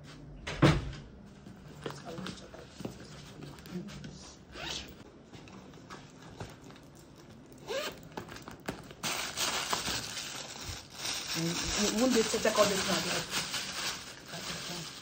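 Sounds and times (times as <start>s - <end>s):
rustling and handling noises: 1.2s - 15.0s
zipper being pulled open: 4.5s - 5.0s, 7.6s - 8.0s.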